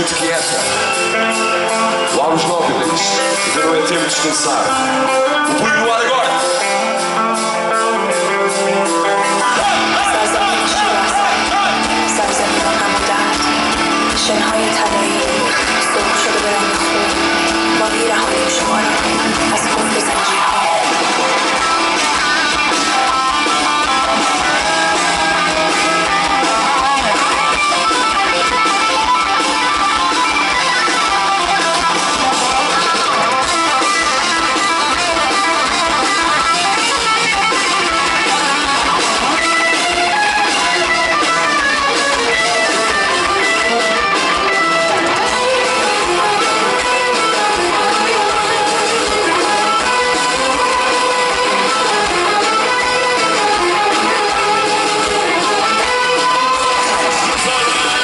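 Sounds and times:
heavy metal band playing: 0.0s - 58.0s.

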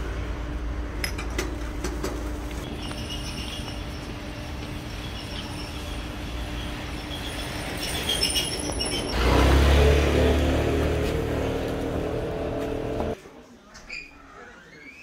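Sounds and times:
street background noise: 0.0s - 15.0s
vehicle engine humming: 8.6s - 13.2s.

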